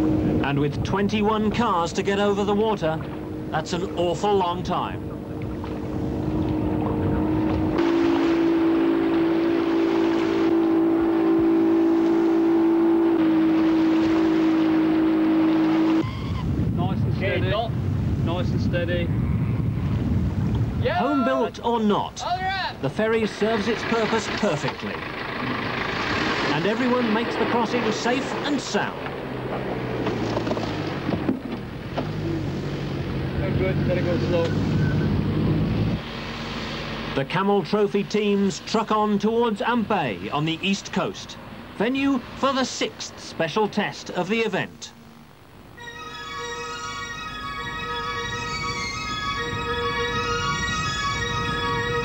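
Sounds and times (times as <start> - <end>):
water rushing: 0.0 - 16.5, 20.8 - 52.0
outboard motor running: 0.0 - 16.7, 23.0 - 40.3, 45.0 - 52.0
diesel engine under load: 0.0 - 16.8, 22.7 - 44.1.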